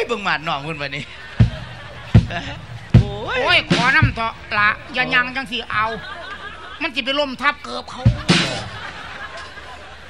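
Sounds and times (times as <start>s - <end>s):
heavy low thumps: 1.2s - 6.8s, 8.0s - 8.9s.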